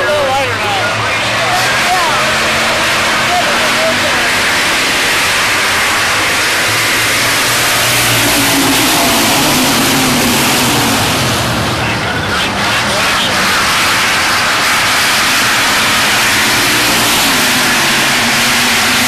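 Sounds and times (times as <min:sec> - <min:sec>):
stock cars racing: 0:00.0 - 0:19.0.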